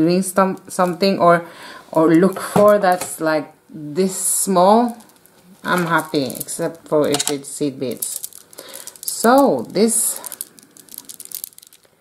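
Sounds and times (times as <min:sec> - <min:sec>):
beads clicking together: 0:04.5 - 0:12.0.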